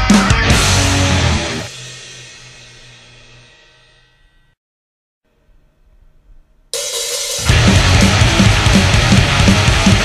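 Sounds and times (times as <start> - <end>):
cymbals ringing: 6.8 - 8.0.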